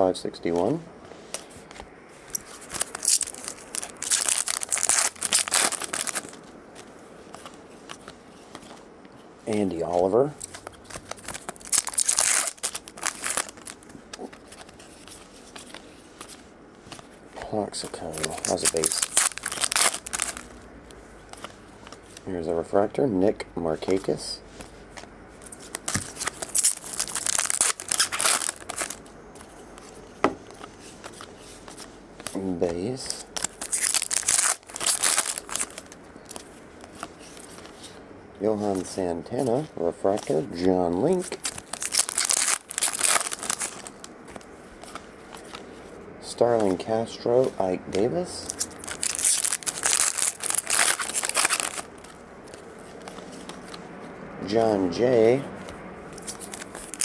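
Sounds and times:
foil rustling: 2.2s - 20.6s, 23.8s - 53.8s, 56.1s - 57.0s
foil wrapper crinkling and tearing: 2.3s - 6.9s, 9.8s - 16.4s, 17.7s - 20.6s, 25.5s - 37.7s, 40.1s - 45.6s, 48.4s - 53.7s, 56.2s - 57.0s.

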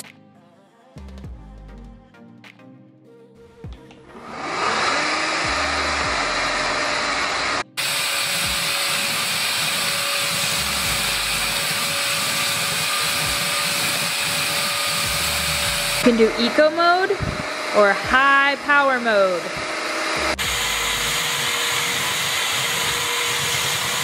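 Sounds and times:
floor cleaner whirring: 4.2s - 24.0s.

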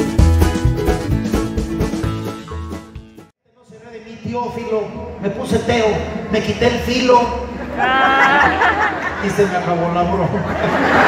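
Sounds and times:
music: 0.0s - 3.3s
man talking into microphone: 3.5s - 7.6s, 9.0s - 10.6s.

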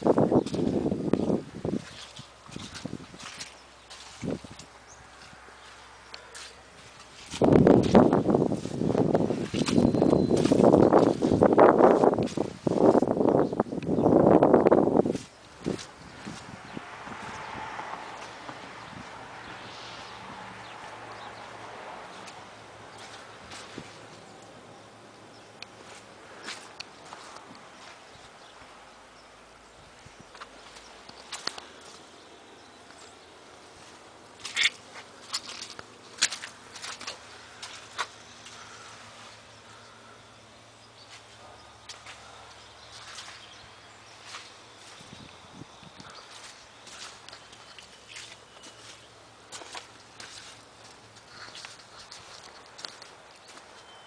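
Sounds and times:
footsteps on wet grass and mud: 0.0s - 54.0s
faint outdoor hiss: 18.2s - 54.0s.

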